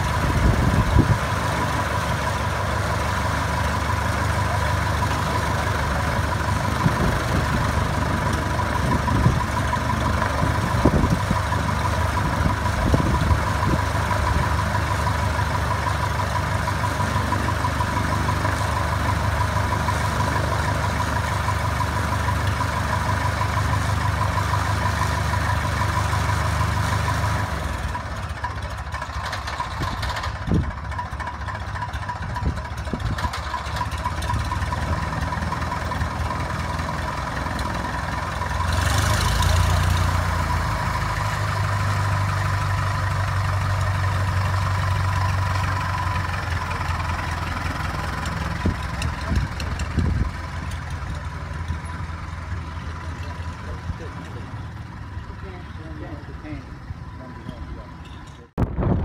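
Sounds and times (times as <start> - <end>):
small plane engine idling: 0.0 - 59.0.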